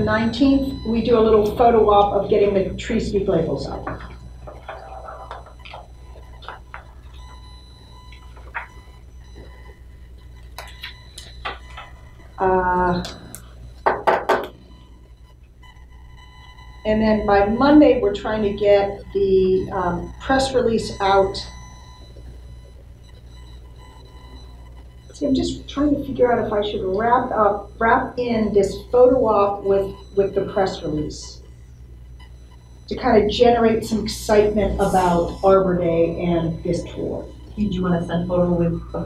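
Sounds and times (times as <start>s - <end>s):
steady low hum: 0.0s - 39.0s
clicks and taps at a table: 13.8s - 14.6s.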